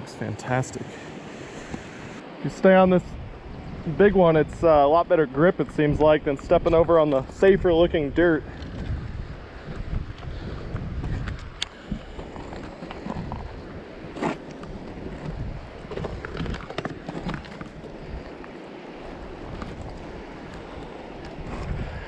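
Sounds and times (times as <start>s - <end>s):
wind buffeting microphone: 0.7s - 22.0s
river rushing: 11.6s - 22.0s
shoes scuffing and clicking on rock: 14.1s - 15.3s.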